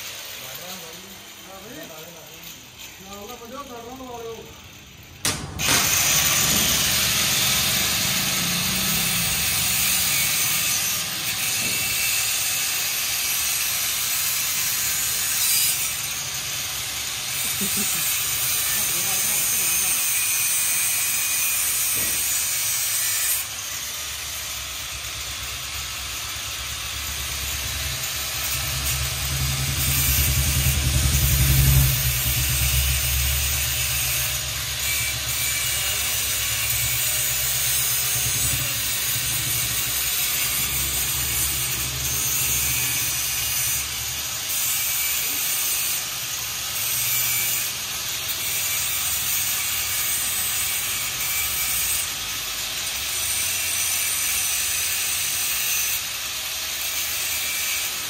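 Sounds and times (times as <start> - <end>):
power tool whirring on metal: 0.0 - 58.0.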